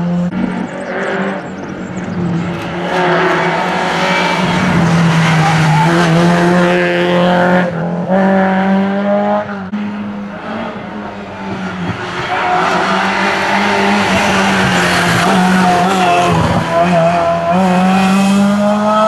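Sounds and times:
rally car engines revving: 0:00.0 - 0:19.0.

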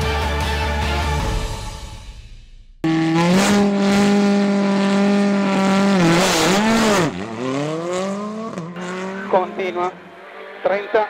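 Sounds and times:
rally car engine revving: 0:02.8 - 0:11.0.

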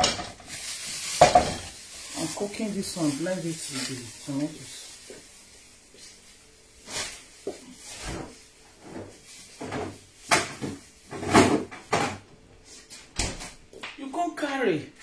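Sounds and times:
knocks and clatters in kitchen: 0:00.0 - 0:01.8, 0:06.9 - 0:12.4, 0:13.0 - 0:14.0.

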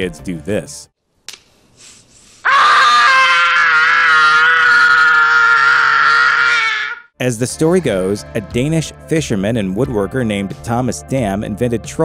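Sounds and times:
boy screaming: 0:02.4 - 0:07.1.

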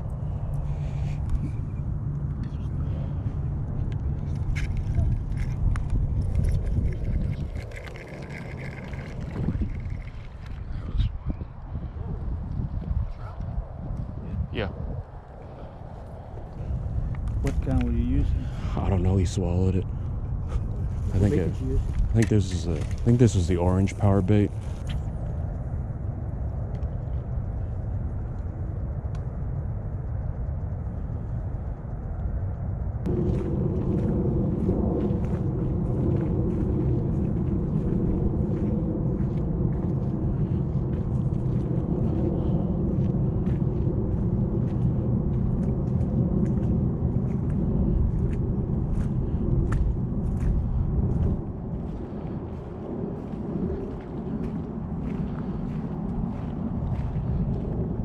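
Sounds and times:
droning hum: 0:00.0 - 0:58.0
low steady outdoor rumble: 0:00.0 - 0:58.0
faint crackles: 0:00.1 - 0:11.7.

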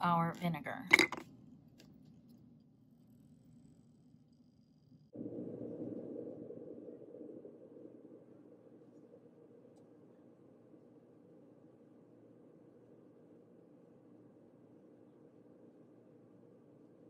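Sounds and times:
rock dropped into glass: 0:00.9 - 0:01.2.

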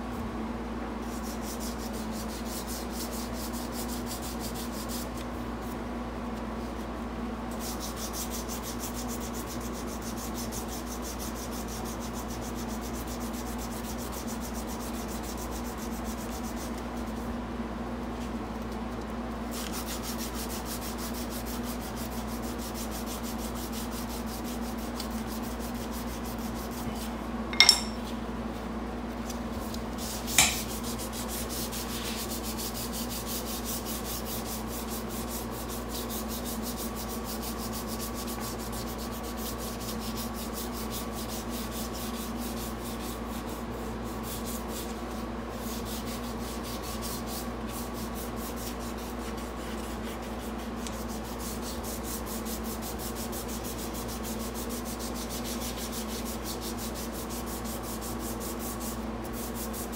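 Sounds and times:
sandpaper rubbing on wood: 0:01.0 - 0:05.8, 0:07.5 - 0:17.3, 0:19.5 - 0:27.0, 0:29.9 - 0:59.9
sharp clinks: 0:27.6 - 0:28.0.

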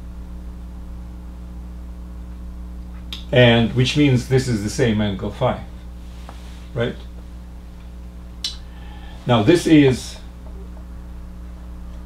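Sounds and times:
low electrical hum with hiss: 0:00.0 - 0:12.0.

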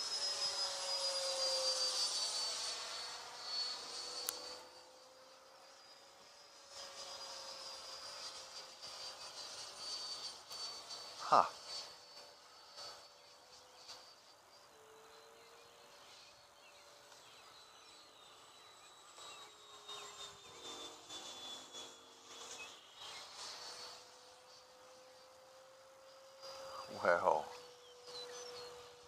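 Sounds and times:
distant rc jet whine: 0:00.0 - 0:29.0.

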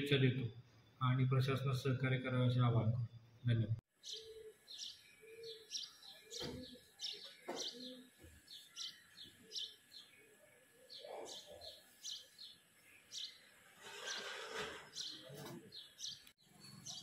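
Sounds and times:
birds chirping: 0:01.6 - 0:17.0.

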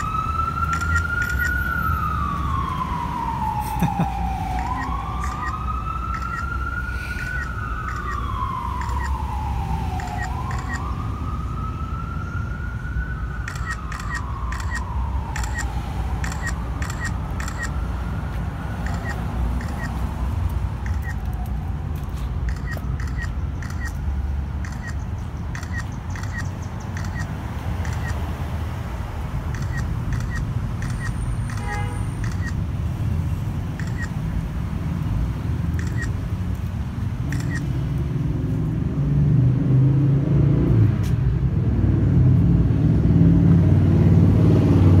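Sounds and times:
motor vehicle approaching: 0:00.0 - 0:31.6, 0:33.7 - 0:45.0
street traffic rumble: 0:00.0 - 0:45.0.

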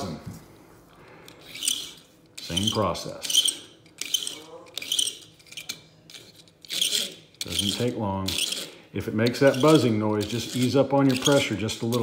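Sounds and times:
toy car wheels scratching sandpaper: 0:06.7 - 0:12.0.

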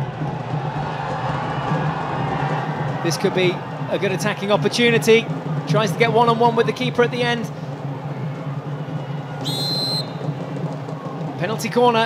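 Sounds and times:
whistle blast: 0:09.4 - 0:10.3.

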